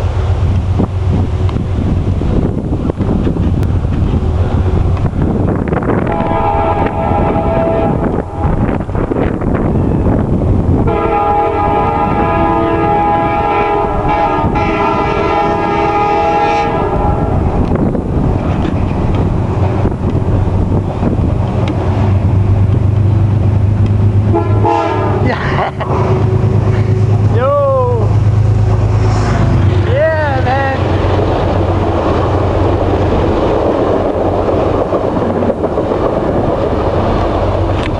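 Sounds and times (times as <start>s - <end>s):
train rumble: 0.0s - 37.9s
train horn blasts: 6.0s - 8.8s, 10.8s - 17.6s, 24.3s - 27.3s.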